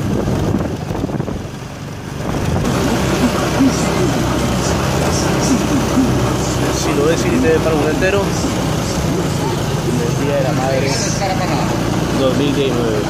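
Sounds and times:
street traffic: 0.0s - 13.0s
vehicle engine at low revs: 0.0s - 13.0s
indistinct voices: 2.6s - 13.0s.

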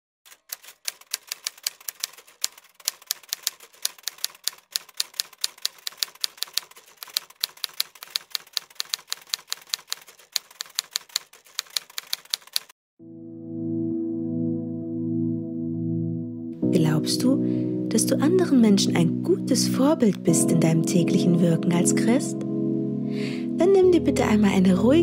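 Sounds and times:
typewriter keystroke clicks: 0.3s - 12.7s.

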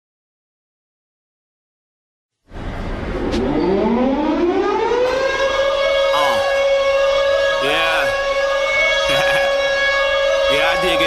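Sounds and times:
siren wailing: 3.0s - 11.0s
hip hop music: 10.3s - 11.0s.

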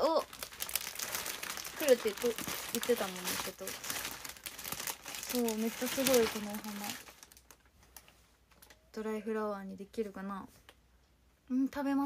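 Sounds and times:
cellophane wrapping crackling: 0.0s - 8.8s.

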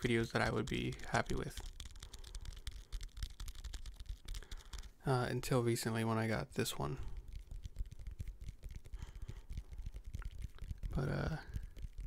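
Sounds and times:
fingertip tapping on microphone: 7.1s - 12.0s.

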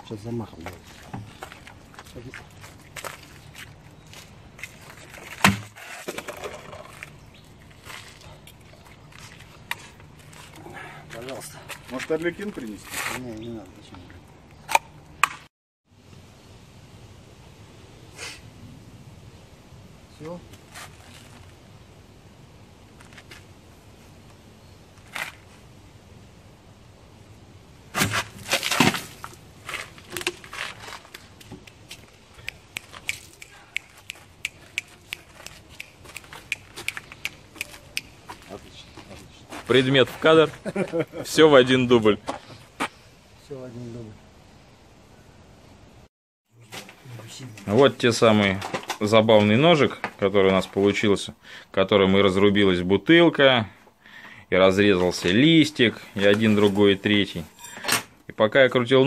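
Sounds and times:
plastic bottle hitting ground: 5.2s - 7.0s, 27.9s - 29.4s.

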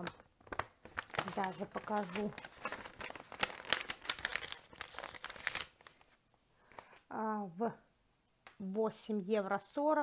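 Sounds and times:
packaging crinkling: 0.0s - 7.0s.

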